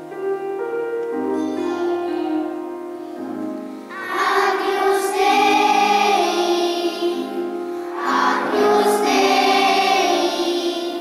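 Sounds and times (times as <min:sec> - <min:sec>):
children singing together: 0:03.9 - 0:11.0.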